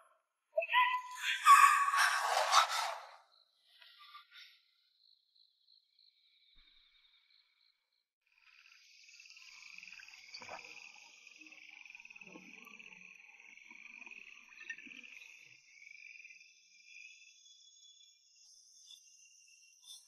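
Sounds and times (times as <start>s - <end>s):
crickets chirping: 0.6s - 20.0s.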